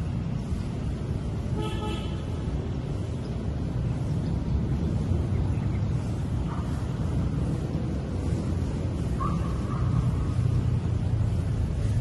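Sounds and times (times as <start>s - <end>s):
city traffic rumble: 0.0s - 12.0s
vehicle horn toot: 1.5s - 2.3s.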